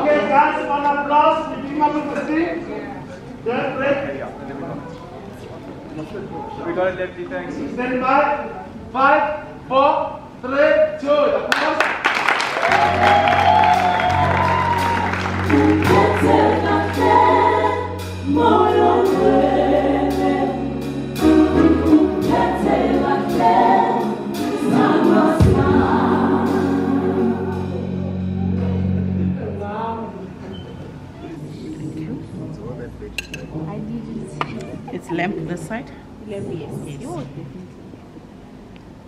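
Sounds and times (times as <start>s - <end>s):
gospel singers: 12.6s - 29.0s
bass and keyboard chords: 12.7s - 30.4s.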